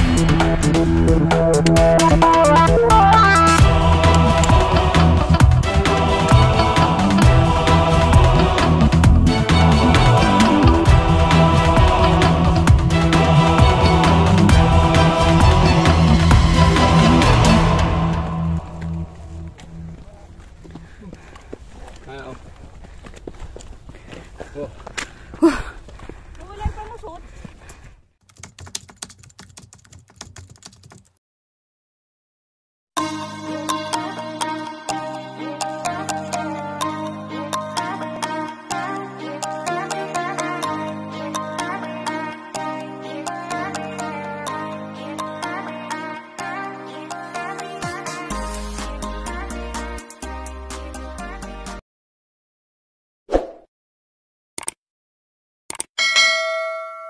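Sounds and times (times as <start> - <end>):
computer keyboard typing clicks: 28.3 - 31.1
sharp clicks: 54.6 - 54.8, 55.7 - 55.9
notification bell ding: 56.0 - 57.0.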